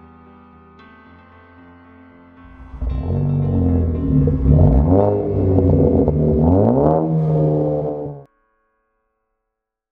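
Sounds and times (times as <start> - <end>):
car engine revving: 2.5 - 8.3.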